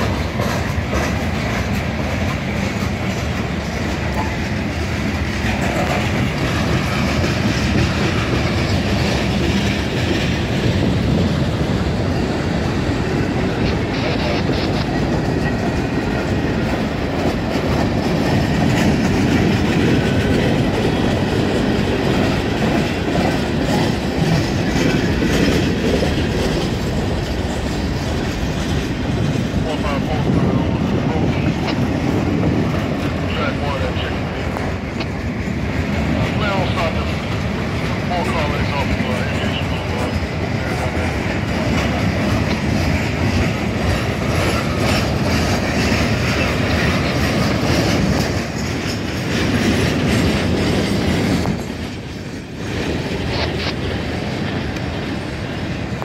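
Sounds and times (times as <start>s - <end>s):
freight train wheels rumbling on rails: 0.0s - 56.0s.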